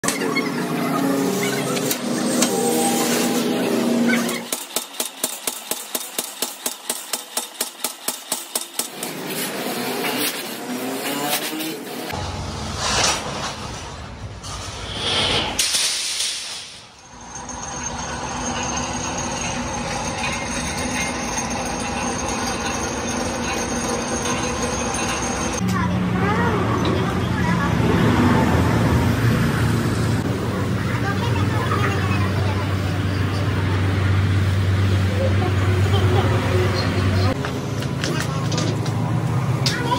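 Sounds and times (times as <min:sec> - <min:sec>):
metal workshop noise: 0:00.0 - 0:39.9.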